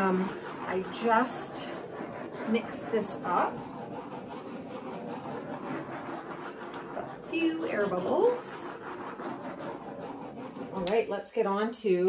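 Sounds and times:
torch flame hissing: 0.0 - 11.0.

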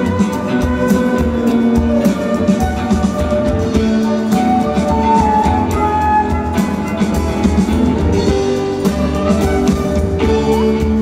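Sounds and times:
drum kit beat: 0.0 - 11.0
live band playing: 0.0 - 11.0.

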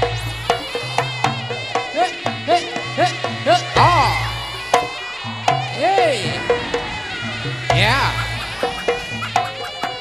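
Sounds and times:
reedy wind instrument melody: 0.0 - 10.0.

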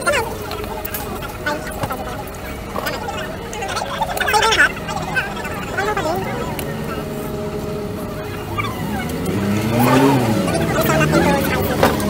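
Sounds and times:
motor vehicle rumbling: 0.0 - 12.0.

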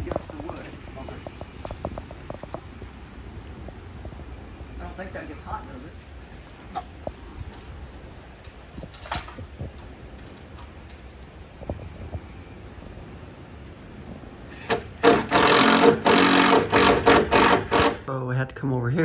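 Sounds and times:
small motor buzzing in bursts: 14.5 - 18.0.

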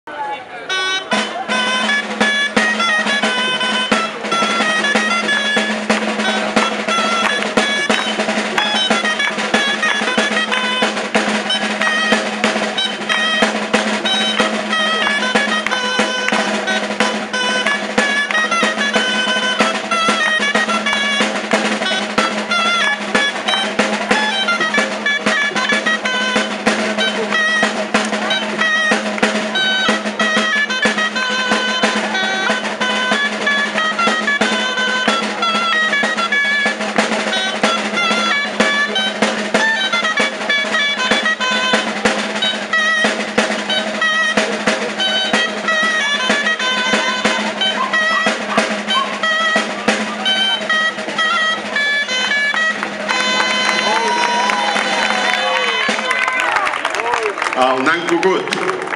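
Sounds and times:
shawms playing dance tune: 0.7 - 58.9
snare drum beating and rolling: 1.0 - 58.9.

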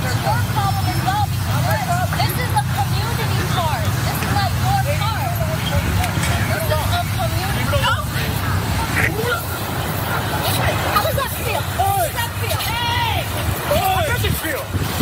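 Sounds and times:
people shouting: 8.7 - 14.6.

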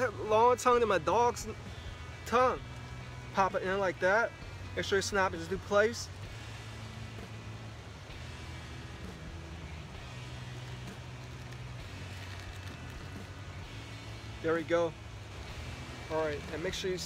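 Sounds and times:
faint music: 0.0 - 17.0
low background rumble: 0.0 - 17.0.

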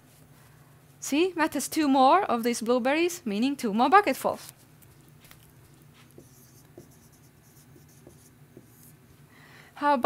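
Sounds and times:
marker writing on whiteboard: 4.8 - 9.1.

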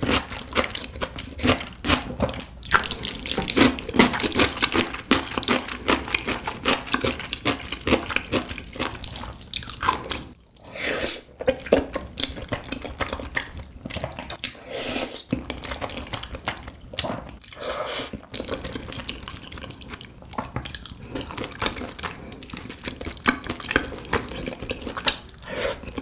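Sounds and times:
wet chewing and smacking: 0.0 - 14.6, 15.2 - 26.0.

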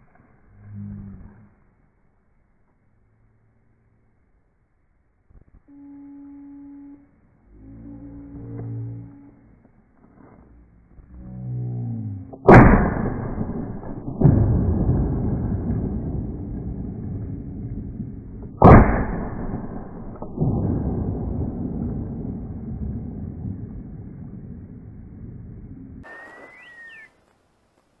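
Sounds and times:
shotgun shot: 12.4 - 24.3
rolling echoes of gunshot: 12.4 - 26.5.

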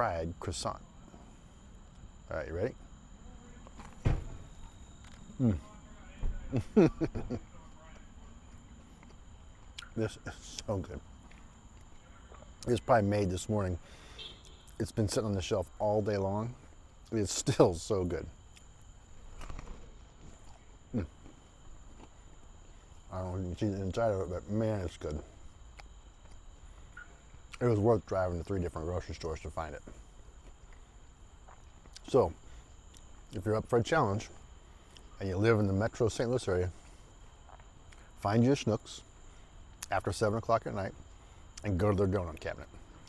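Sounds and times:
high-pitched insect chorus: 0.0 - 43.0
loud low thump: 4.0 - 4.5
man chewing a donut: 6.6 - 12.7, 18.4 - 23.1, 25.1 - 27.6, 30.0 - 33.4, 36.8 - 38.2
person chewing pastry: 19.3 - 22.5, 37.4 - 38.1.

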